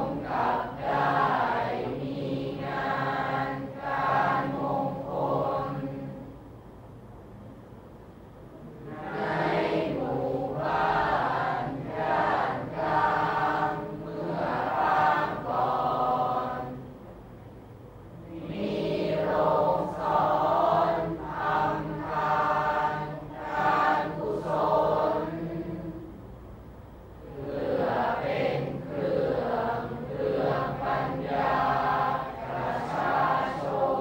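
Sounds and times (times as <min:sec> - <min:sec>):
group of voices chanting verse: 0:00.0 - 0:06.3, 0:08.6 - 0:16.9, 0:18.2 - 0:26.2, 0:27.2 - 0:34.0.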